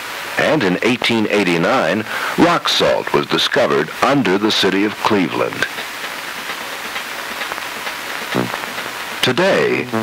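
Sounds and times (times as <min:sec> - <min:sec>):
film soundtrack hiss: 0:00.0 - 0:10.0
brief vocal sound: 0:08.4 - 0:08.6.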